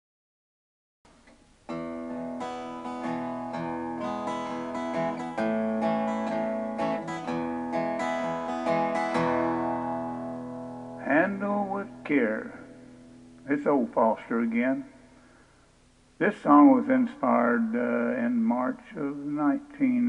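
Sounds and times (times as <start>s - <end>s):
acoustic guitar strumming chords: 1.1s - 15.6s
man's voice: 11.0s - 12.8s, 13.4s - 15.0s, 16.2s - 20.0s.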